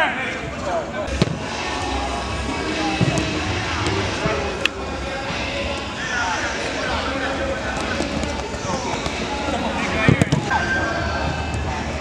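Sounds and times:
ball kick thuds: 1.1 - 1.6, 2.9 - 4.5.

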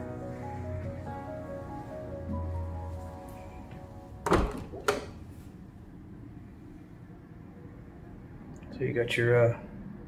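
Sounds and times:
door handle and latch thunks: 4.2 - 5.1.

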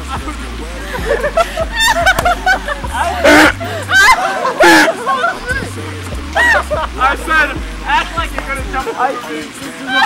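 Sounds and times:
background music: 0.0 - 10.0
people talking and laughing: 0.0 - 10.0
loud vocal outburst: 2.4 - 5.8.

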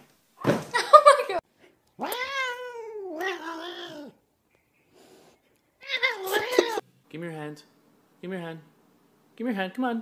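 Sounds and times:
cat meowing: 2.0 - 4.2, 5.8 - 6.8.

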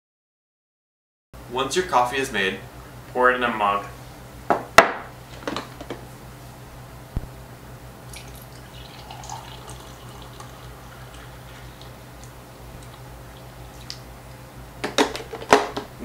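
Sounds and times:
carafe knocking on coffee maker: 4.5 - 6.0
coffee pouring into mug: 8.1 - 13.9.

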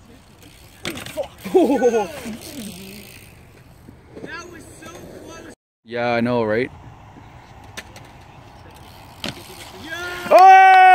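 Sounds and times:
bike rolling over concrete: 0.0 - 5.5, 7.1 - 10.9.

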